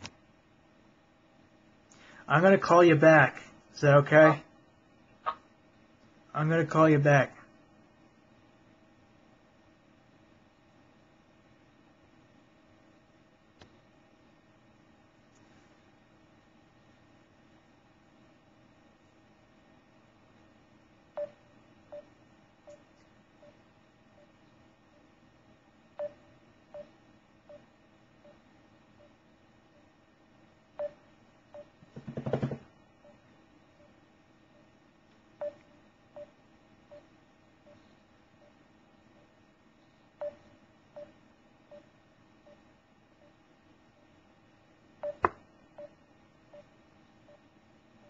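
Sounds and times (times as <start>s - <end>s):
call tone beeps: 45.0s - 46.0s.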